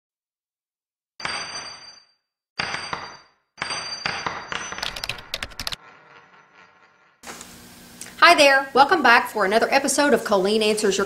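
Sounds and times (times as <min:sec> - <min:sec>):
sharp clicks: 0:04.8 - 0:05.8.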